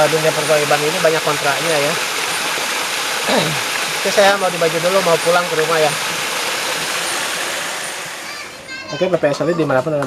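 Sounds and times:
river water rushing: 0:00.0 - 0:08.6.

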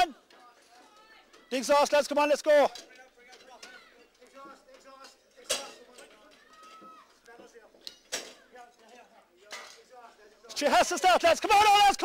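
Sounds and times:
metal tools clanking: 0:02.6 - 0:10.0.

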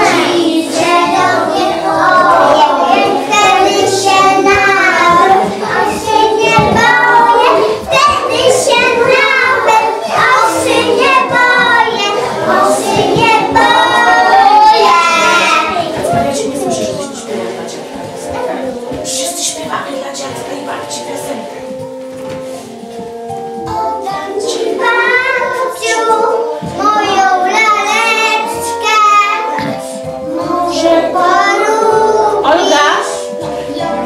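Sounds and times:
young children singing: 0:00.0 - 0:34.0.

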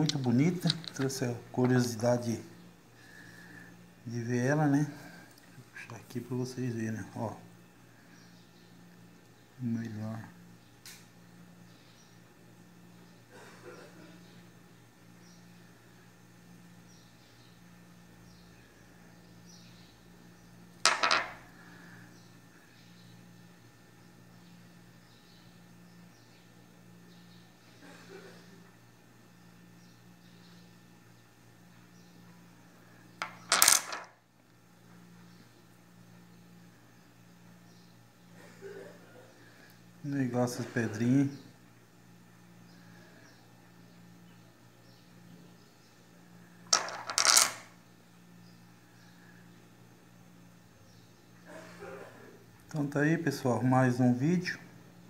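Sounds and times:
stone clacking on stone: 0:00.0 - 0:01.8, 0:20.9 - 0:21.4, 0:33.2 - 0:34.1, 0:46.8 - 0:47.7
stone clacking on countertop: 0:20.9 - 0:21.4.

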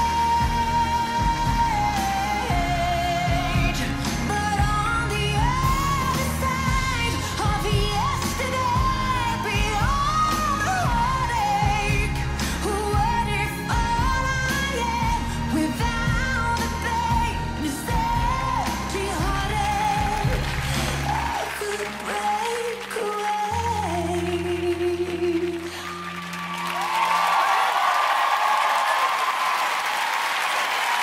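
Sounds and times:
bass line: 0:00.0 - 0:21.6
woman singing: 0:00.0 - 0:26.2
piano: 0:00.0 - 0:29.6.

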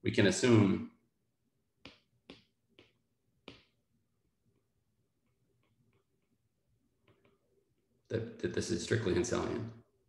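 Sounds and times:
stylus tapping on glass screen: 0:01.8 - 0:03.8.

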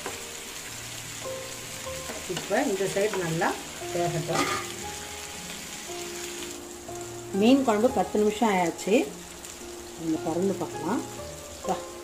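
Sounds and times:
fish sizzling in oil: 0:00.0 - 0:12.0.

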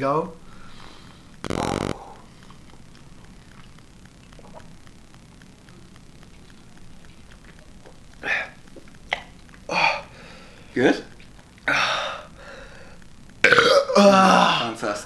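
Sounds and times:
man gulping from a can: 0:01.4 - 0:02.8, 0:03.5 - 0:04.8, 0:06.4 - 0:10.2.

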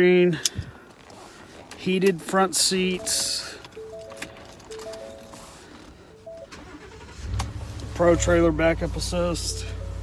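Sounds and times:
soft background music: 0:02.8 - 0:10.0
pickup truck engine idling: 0:06.3 - 0:10.0.

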